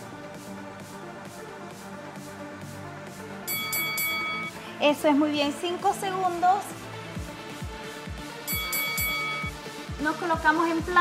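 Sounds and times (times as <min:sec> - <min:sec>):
electronic workout music: 0:00.0 - 0:11.0
bright ringing tone: 0:03.5 - 0:04.6, 0:08.5 - 0:09.6.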